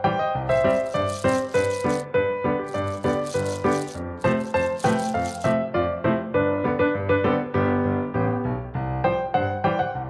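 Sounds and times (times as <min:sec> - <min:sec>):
candies rattling under a hand: 0:00.6 - 0:02.1, 0:02.7 - 0:05.6.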